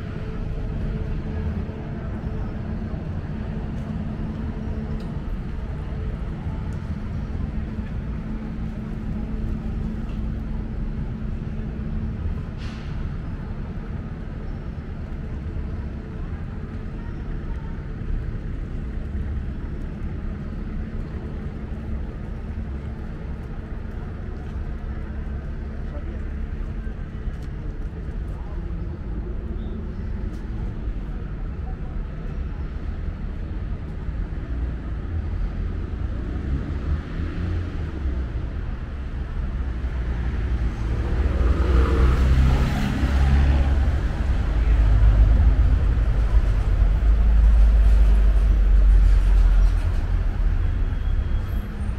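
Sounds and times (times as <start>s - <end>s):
low hum of cars: 0.0s - 51.9s.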